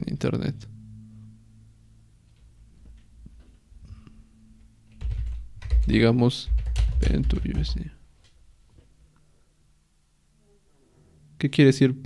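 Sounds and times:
low rumble: 0.0s - 6.0s
low electrical hum: 0.0s - 12.0s
computer keyboard clicks: 5.0s - 7.9s.

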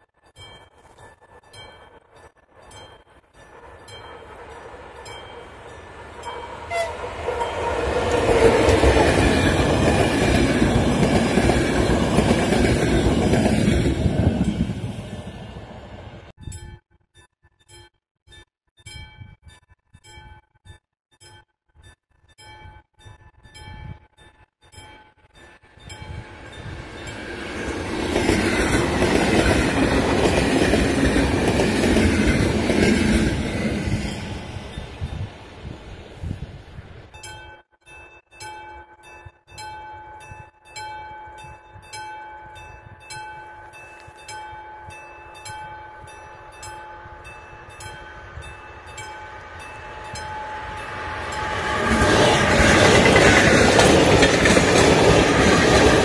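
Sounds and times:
electric train passing: 0.1s - 16.4s, 25.5s - 56.0s
level-crossing warning bell ringing: 0.3s - 15.4s, 37.1s - 54.8s.

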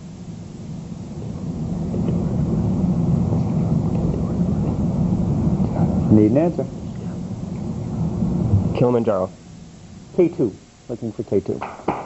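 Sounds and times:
overlapping low voices conferring: 0.7s - 11.3s.

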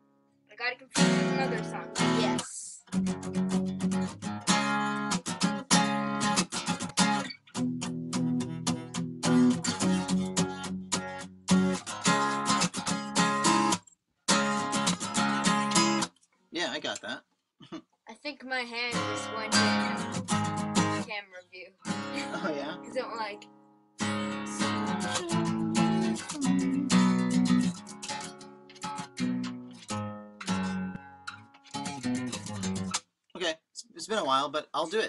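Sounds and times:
acoustic guitar strumming chords: 0.9s - 16.1s, 18.9s - 21.2s, 21.8s - 33.0s.

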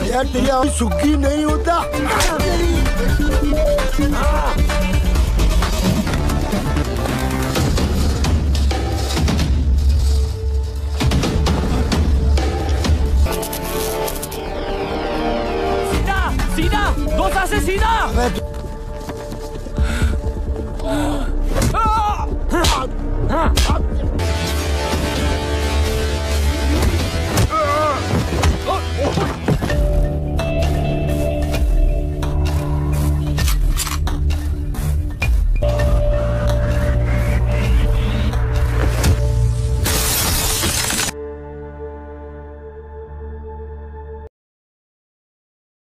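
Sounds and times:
action music with pulsing beat: 0.0s - 41.1s
soft synth music: 29.7s - 39.8s.

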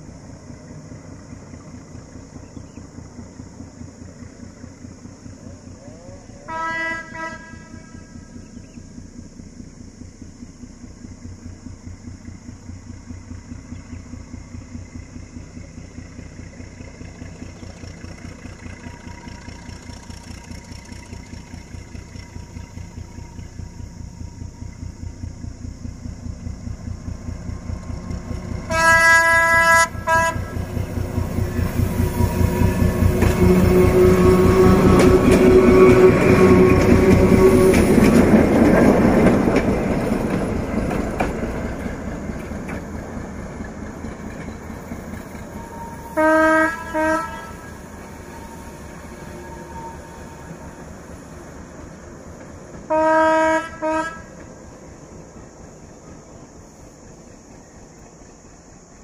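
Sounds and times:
diesel locomotive engine throbbing: 0.0s - 59.0s
train horn blasts: 6.4s - 8.4s, 28.6s - 30.8s, 32.0s - 38.2s, 45.4s - 51.0s, 52.8s - 54.4s.

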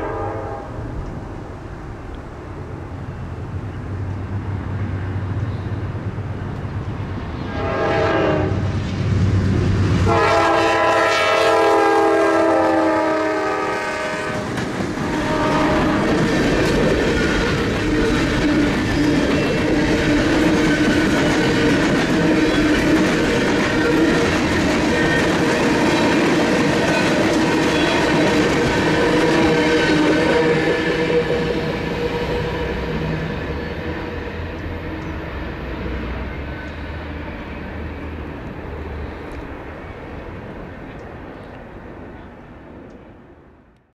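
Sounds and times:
train horn: 0.0s - 1.0s, 7.4s - 8.7s, 10.0s - 36.8s
train wheels clattering on rails: 14.2s - 36.8s
locomotive engines running: 14.4s - 41.6s.

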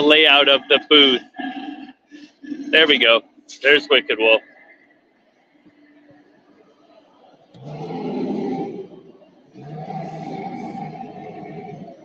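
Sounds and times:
animatronic prop growling: 7.5s - 12.0s.

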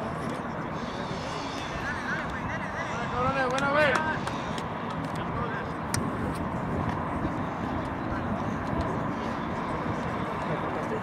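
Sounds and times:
city traffic hum: 0.0s - 11.0s.

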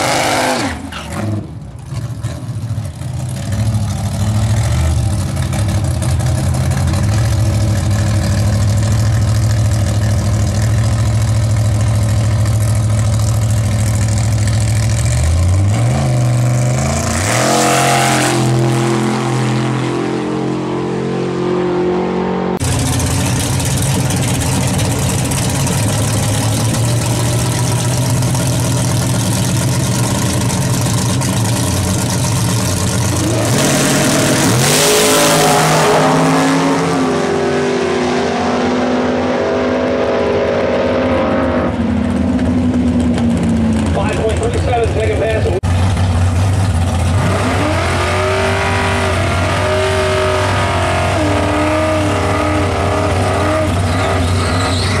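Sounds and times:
drag race car engine revving: 0.0s - 55.0s.

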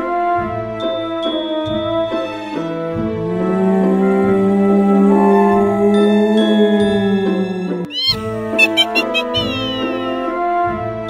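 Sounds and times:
spooky background music: 0.0s - 10.2s
cat meow sound effect: 7.9s - 10.2s
short blips: 7.9s - 10.2s.

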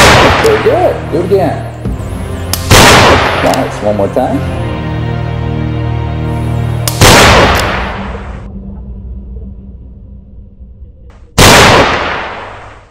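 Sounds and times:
loud handgun shots echoing: 0.0s - 0.8s, 2.6s - 3.7s, 6.9s - 8.0s, 11.4s - 12.7s
background music: 0.0s - 12.3s.

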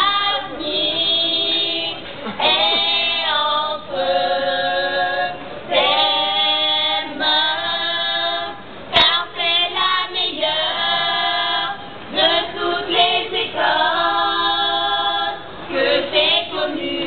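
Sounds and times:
group singing a cappella: 0.0s - 17.0s.

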